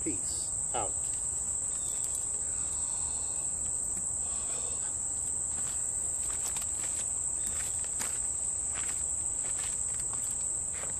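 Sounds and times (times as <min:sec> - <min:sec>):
high-pitched insect chorus: 0:00.0 - 0:10.9
rustling of camp chair: 0:05.2 - 0:10.9.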